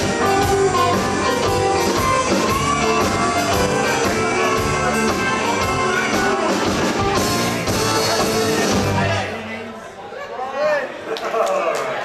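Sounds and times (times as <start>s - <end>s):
live rock band playing: 0.0s - 9.5s.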